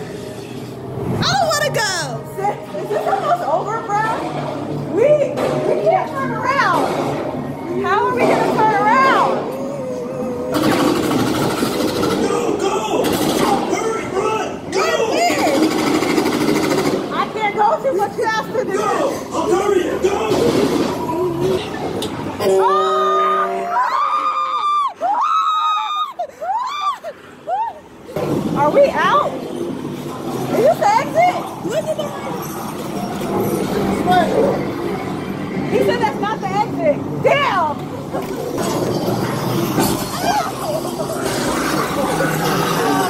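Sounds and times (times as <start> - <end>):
loud rough noise: 10.3 - 13.8, 37.9 - 43.0
people shrieking in fright: 22.4 - 28.2, 39.7 - 43.0.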